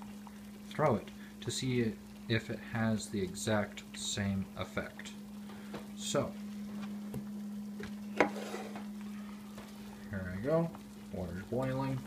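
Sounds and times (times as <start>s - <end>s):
steady low hum: 0.0s - 12.0s
water boiling in a saucepan: 0.0s - 12.0s.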